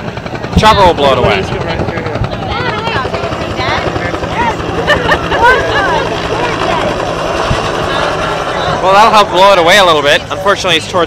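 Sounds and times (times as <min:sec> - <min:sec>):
helicopter rotor chopping: 0:00.0 - 0:11.0.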